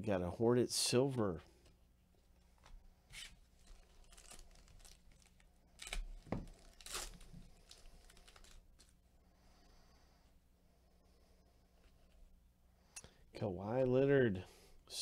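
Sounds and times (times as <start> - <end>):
foil wrapper tearing and crinkling: 3.6 - 8.9.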